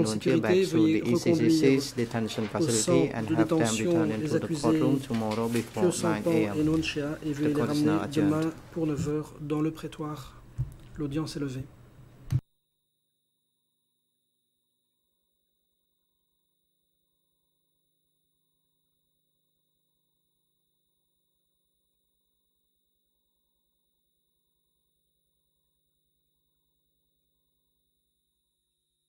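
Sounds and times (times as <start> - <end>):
person speaking: 0.0 - 11.7.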